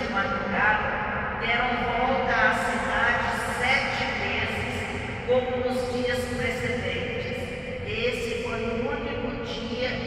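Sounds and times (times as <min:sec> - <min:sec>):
man reading aloud: 0:00.0 - 0:10.0.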